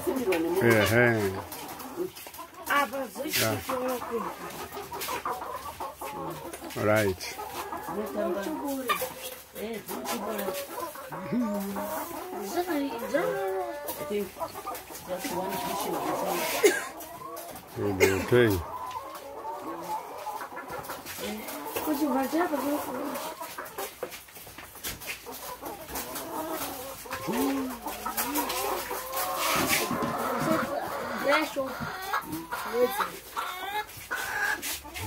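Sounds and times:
hens clucking: 0.0s - 35.0s.

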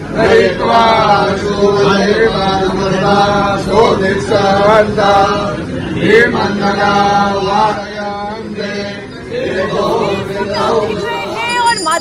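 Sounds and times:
men chanting in held notes: 0.0s - 11.4s.

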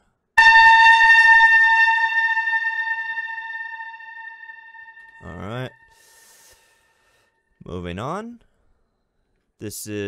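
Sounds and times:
ringing metallic tone: 0.4s - 5.9s.

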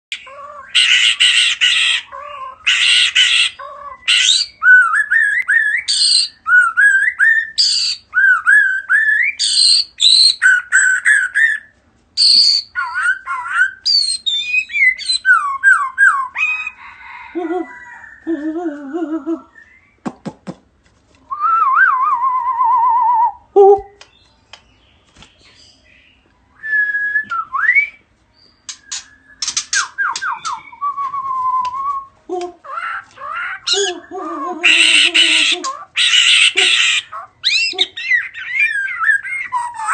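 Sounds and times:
bird singing whistled notes: 4.0s - 16.5s, 24.1s - 32.1s.

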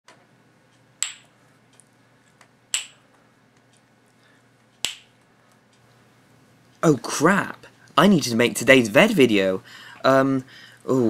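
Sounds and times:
wooden ball clacking on wood: 2.7s - 3.0s.

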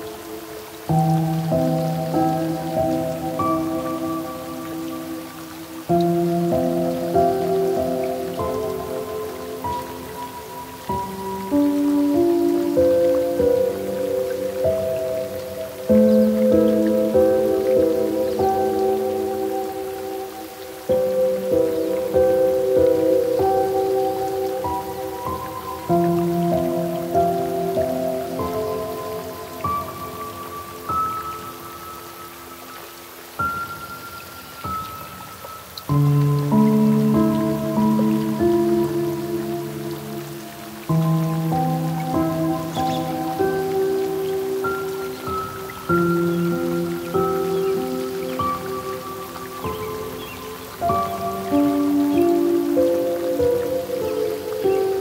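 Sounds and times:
falling rain: 0.0s - 55.0s
slow gentle piano music: 0.0s - 55.0s.

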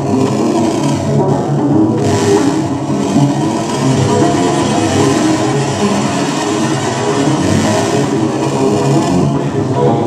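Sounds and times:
gritty electronic noise drone: 0.0s - 10.0s.

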